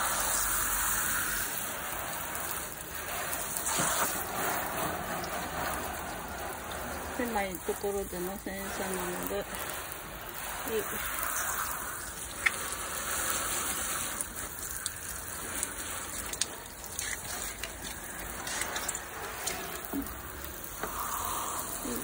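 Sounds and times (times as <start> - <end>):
hose spray hitting car: 0.0 - 22.0.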